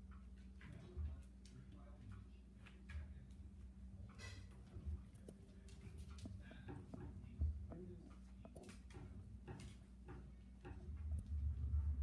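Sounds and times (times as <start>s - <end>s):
low steady hum: 0.0s - 12.0s
puppies scuffling on vinyl floor: 0.0s - 12.0s.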